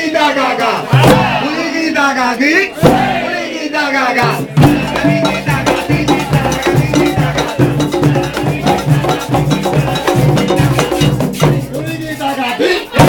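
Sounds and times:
frame drums played fast: 0.9 - 1.6, 2.8 - 3.3, 4.2 - 13.0
low drum tone: 2.8 - 3.2, 4.2 - 11.6.

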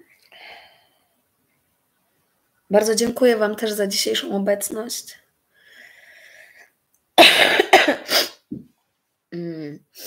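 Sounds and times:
woman coughing: 7.2 - 8.4.

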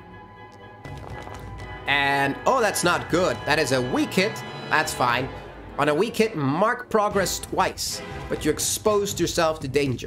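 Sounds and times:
combat background music: 0.0 - 10.0.

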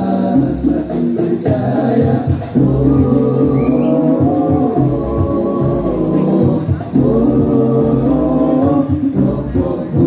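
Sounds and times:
hand-beaten frame drums: 0.0 - 10.0
male voices singing together: 0.0 - 10.0.

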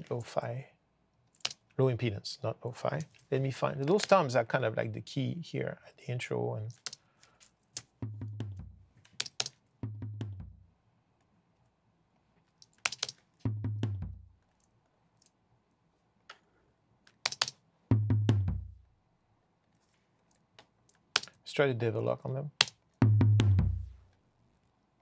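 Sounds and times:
deep tom drum hits: 8.0 - 8.8, 9.8 - 10.6, 13.5 - 14.2, 23.0 - 24.0
computer keyboard clicks: 9.1 - 9.6, 12.6 - 13.2, 17.1 - 17.6, 21.2 - 21.4.

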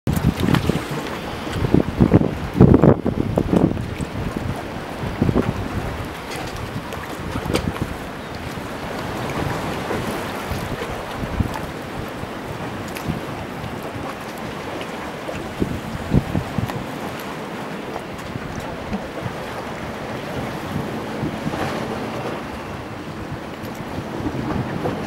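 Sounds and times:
rushing water: 0.1 - 25.0
wind buffeting microphone: 0.1 - 25.0.

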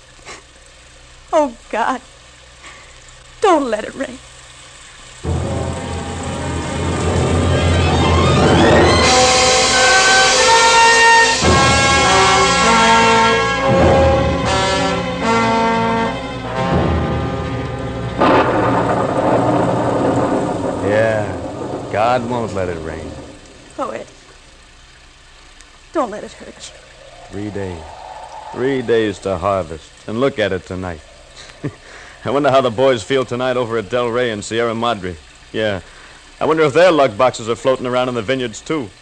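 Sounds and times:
rain sound effect hiss: 0.0 - 39.0
dramatic orchestral music: 5.3 - 23.3.

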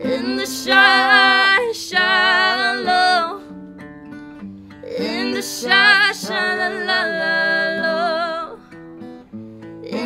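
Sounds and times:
woman singing: 0.0 - 3.5, 4.8 - 8.6
acoustic guitar playing: 0.0 - 10.0.

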